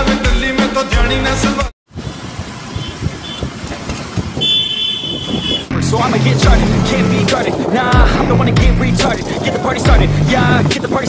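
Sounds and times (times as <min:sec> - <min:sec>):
music: 0:00.0 - 0:01.7, 0:05.7 - 0:11.0
road traffic rumble: 0:01.9 - 0:11.0
vehicle horns tooting: 0:02.6 - 0:05.8
long high horn: 0:04.4 - 0:05.8.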